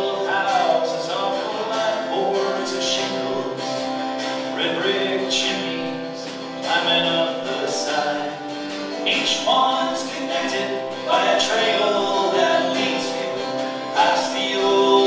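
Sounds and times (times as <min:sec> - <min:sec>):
live band guitars: 0:00.0 - 0:15.0
people singing: 0:00.0 - 0:15.0.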